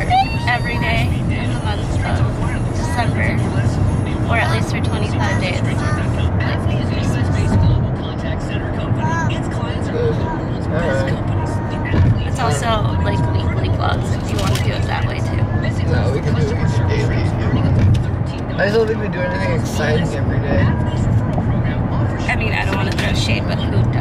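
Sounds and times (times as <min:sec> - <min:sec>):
car cabin road rumble: 0:00.0 - 0:24.0
voices: 0:00.0 - 0:24.0.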